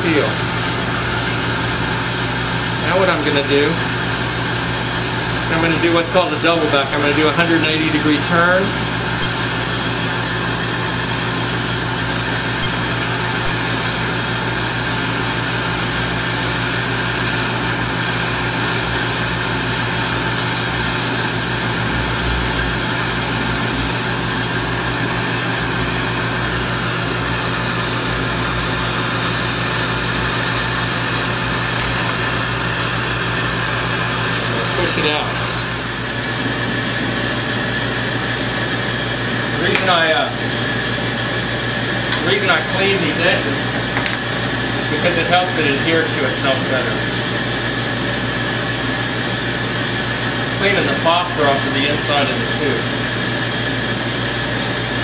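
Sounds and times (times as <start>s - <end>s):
gas burners rushing: 30.4s - 47.4s.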